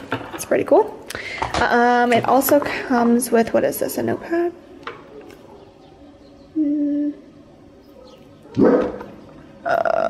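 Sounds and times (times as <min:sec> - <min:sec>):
woman humming: 0:06.6 - 0:07.3, 0:09.6 - 0:10.0
dog bark: 0:08.0 - 0:09.0.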